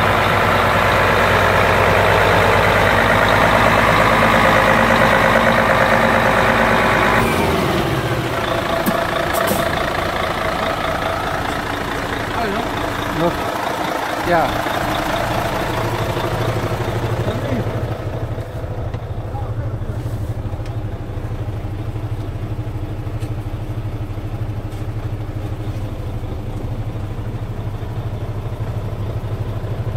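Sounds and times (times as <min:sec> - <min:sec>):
diesel truck idling: 0:00.0 - 0:29.9.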